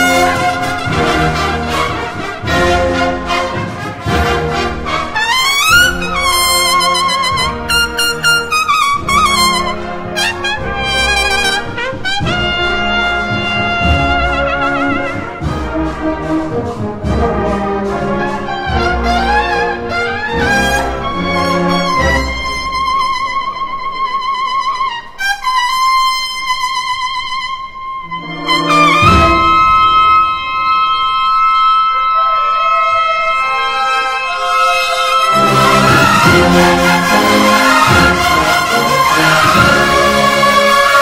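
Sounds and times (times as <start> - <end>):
drum beats: 0.0 - 22.8, 35.4 - 41.0
brass band playing a march: 0.0 - 41.0
trumpets playing melody: 0.0 - 41.0.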